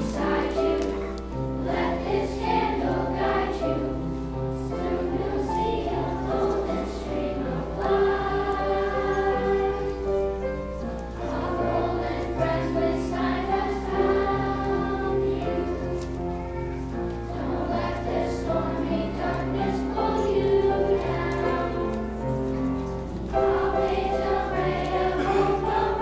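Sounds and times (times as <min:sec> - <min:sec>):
children's choir singing: 0:00.0 - 0:26.0
piano accompaniment: 0:00.0 - 0:26.0.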